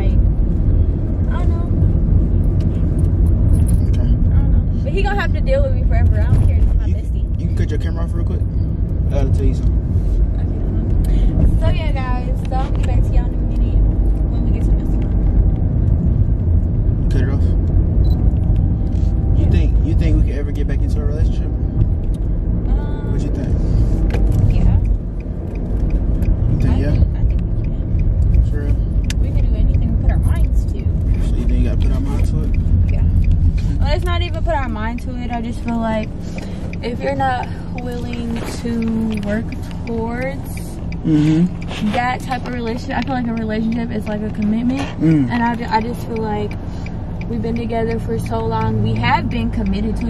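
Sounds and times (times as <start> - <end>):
car road and engine rumble: 0.0 - 50.0
person speaking: 33.7 - 46.5.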